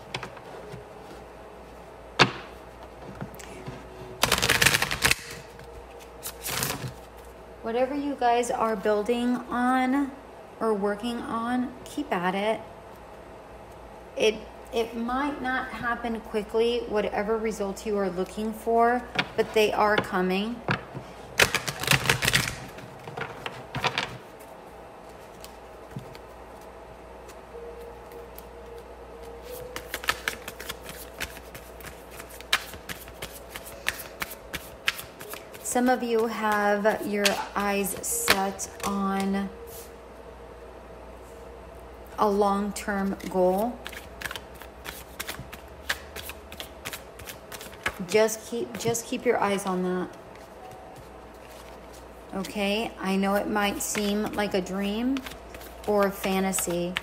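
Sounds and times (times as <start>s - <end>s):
cards being shuffled: 4.2s - 7.0s, 29.4s - 36.6s, 43.2s - 48.1s, 55.1s - 57.0s.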